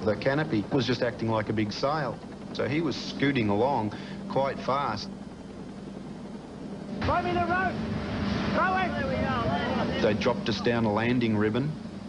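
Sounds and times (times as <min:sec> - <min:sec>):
motorboats running at speed: 0:00.0 - 0:12.0.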